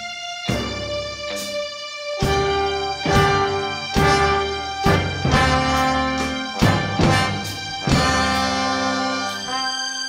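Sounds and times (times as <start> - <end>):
sharp drum and cymbal accents: 0.5 - 9.5
sustained horn chords: 0.5 - 10.0.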